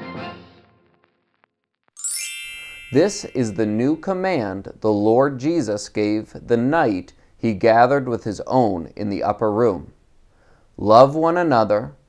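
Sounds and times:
electronic chime ding: 2.0 - 4.0.

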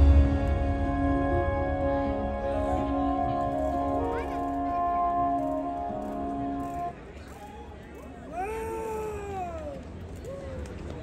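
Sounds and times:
crowd rumble: 0.0 - 11.0.

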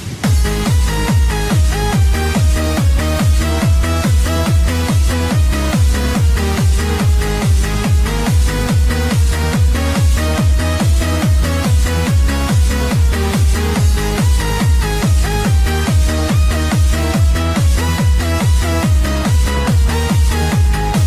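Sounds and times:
techno dance track: 0.0 - 21.0.

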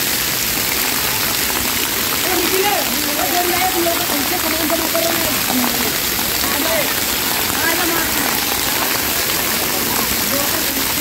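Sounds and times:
fountain water spraying and pattering: 0.0 - 11.0.

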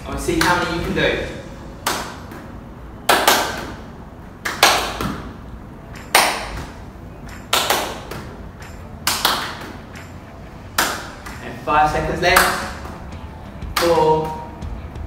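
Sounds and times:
hand claps: 1.8 - 2.3, 3.1 - 3.8, 4.4 - 5.1, 6.0 - 6.7, 7.3 - 10.1, 10.8 - 11.4, 12.3 - 12.7.

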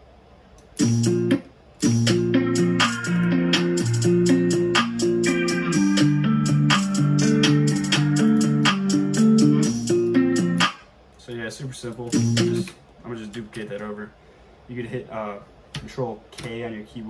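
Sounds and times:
trap beat with plucked guitar: 0.8 - 10.8, 12.1 - 12.8.

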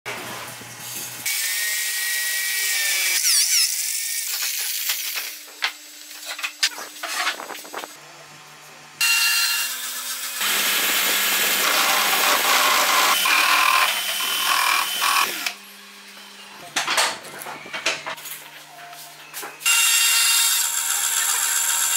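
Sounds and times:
electric drill whining: 10.4 - 15.6.

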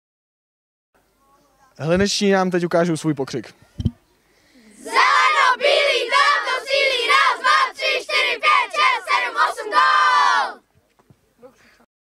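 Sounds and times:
children chanting and shouting: 4.5 - 10.6.

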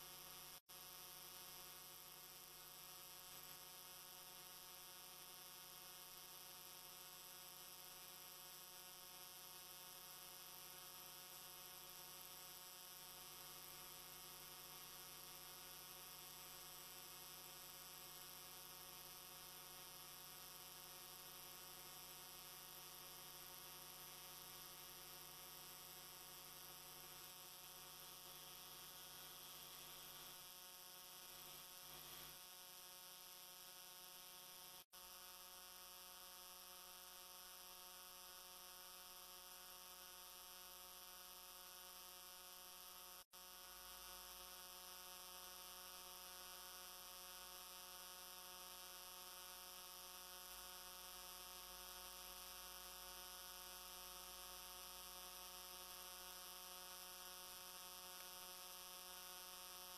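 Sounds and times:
faint electrical hum: 0.0 - 59.9.

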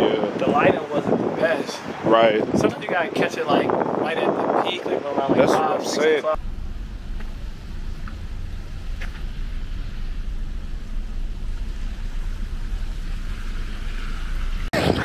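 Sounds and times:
wind buffeting microphone: 0.0 - 15.0.

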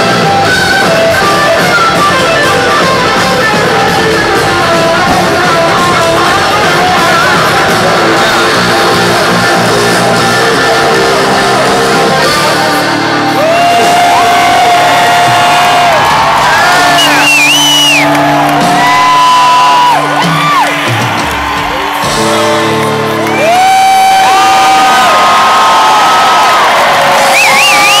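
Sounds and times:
crowd whooping and cheering: 0.0 - 28.0
rock band sustained chords: 0.0 - 28.0.

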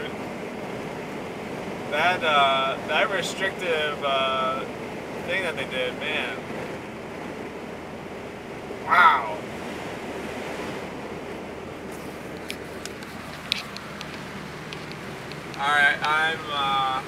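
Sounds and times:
road and wind noise in car: 0.0 - 17.0
short vocal exclamation: 8.8 - 9.4
light clicks: 12.4 - 15.6.

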